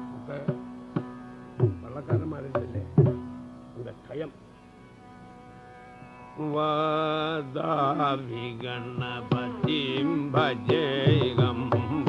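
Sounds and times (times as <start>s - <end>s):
soft steady drone: 0.0s - 12.0s
drum strokes: 0.4s - 3.4s.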